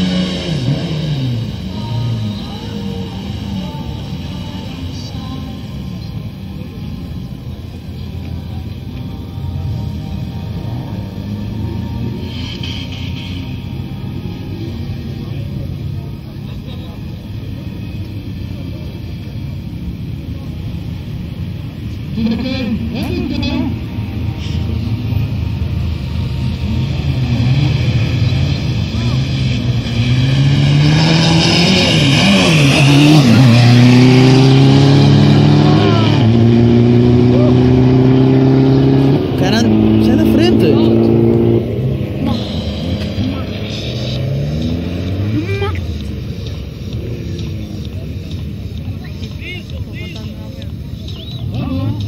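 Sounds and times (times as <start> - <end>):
cars accelerating hard: 0.0 - 6.0, 9.5 - 52.0.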